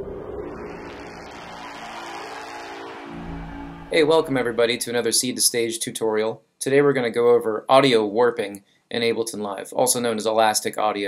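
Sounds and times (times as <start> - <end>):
noisy wash: 0.0 - 5.3
synthesized drone: 0.0 - 5.3.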